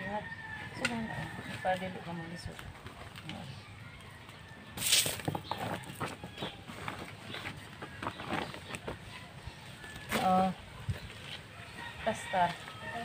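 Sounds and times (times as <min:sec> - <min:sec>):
plastic sack rustling and crackling: 0:04.8 - 0:09.2.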